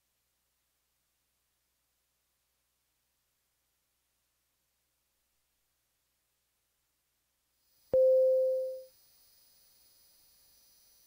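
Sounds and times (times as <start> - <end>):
faint steady hiss: 0.0 - 11.0
pure mid-pitched tone: 8.0 - 8.9.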